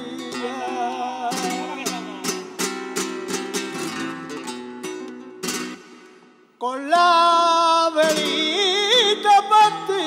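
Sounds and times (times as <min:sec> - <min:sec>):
flamenco acoustic guitar: 0:00.0 - 0:10.0.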